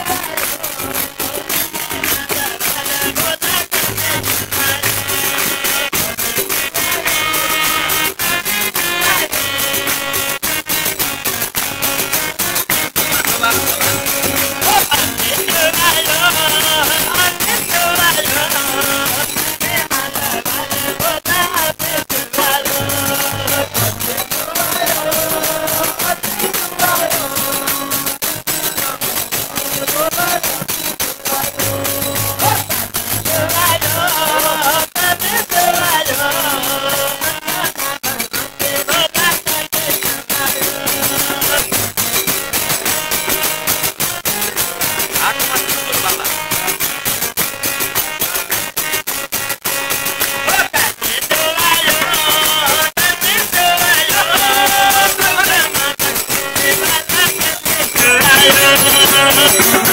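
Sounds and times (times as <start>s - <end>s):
men singing a chant: 0.0s - 10.6s, 12.0s - 46.6s, 50.4s - 59.9s
hand-played percussion: 0.0s - 59.9s
shaker-like rattle: 21.9s - 47.3s, 51.3s - 59.9s.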